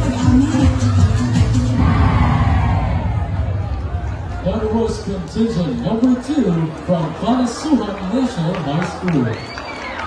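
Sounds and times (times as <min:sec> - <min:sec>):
performance music: 0:00.0 - 0:05.9
crowd cheering and shouting: 0:00.0 - 0:10.0.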